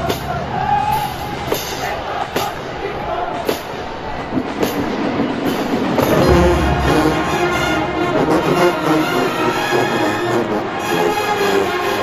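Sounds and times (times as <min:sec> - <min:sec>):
marching band drum hits: 0:04.4 - 0:10.3
brass section chords: 0:06.0 - 0:12.0.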